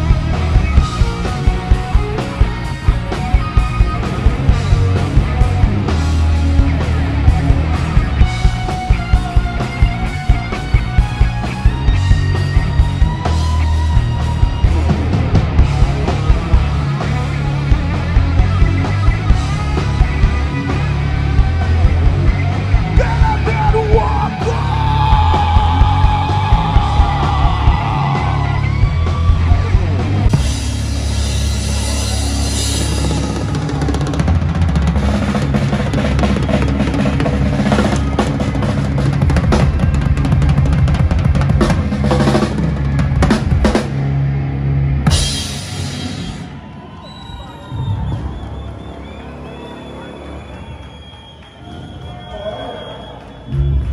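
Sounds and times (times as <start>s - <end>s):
drums and cymbal crashes: 0.0s - 44.1s, 45.0s - 46.5s
punk rock band playing: 0.0s - 46.9s.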